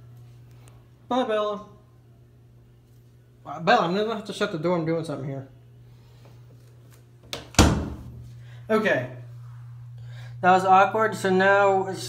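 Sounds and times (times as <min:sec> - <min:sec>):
low steady hum: 0:00.0 - 0:12.0
door thudding shut: 0:07.4 - 0:08.2.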